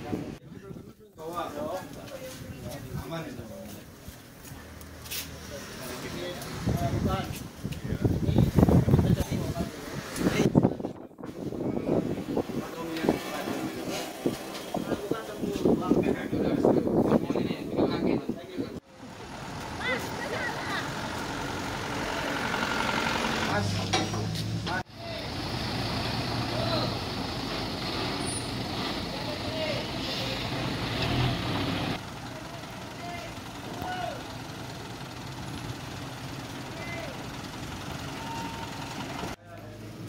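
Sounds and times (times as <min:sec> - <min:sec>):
people talking: 0:05.4 - 0:11.1, 0:12.4 - 0:19.2, 0:19.8 - 0:21.0, 0:23.5 - 0:25.3, 0:29.1 - 0:30.6, 0:32.2 - 0:34.2
diesel engine humming: 0:18.9 - 0:40.0.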